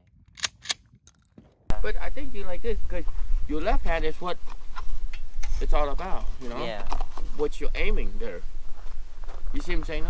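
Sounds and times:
wind rumble on microphone: 0:00.0 - 0:10.0
gun mechanical clicks: 0:00.1 - 0:01.4.

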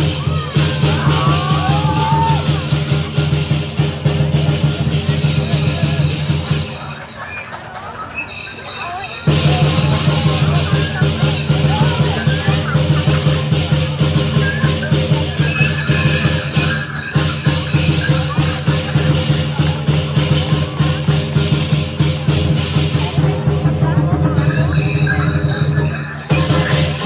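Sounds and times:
drum and cymbals beating: 0:00.0 - 0:07.2, 0:09.1 - 0:27.0
voices: 0:00.0 - 0:27.0.

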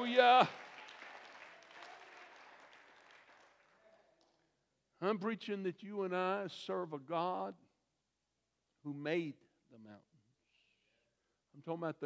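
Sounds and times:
faint applause: 0:00.0 - 0:04.4.

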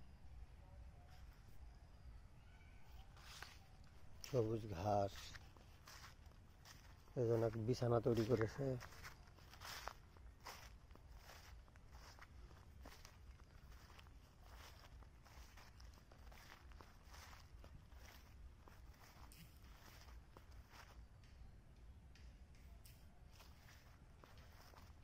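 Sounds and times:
footsteps on grass and leaves: 0:02.9 - 0:21.3, 0:22.8 - 0:25.0.

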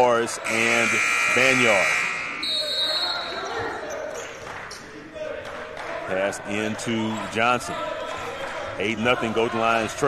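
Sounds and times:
steady buzzer: 0:00.4 - 0:02.6.

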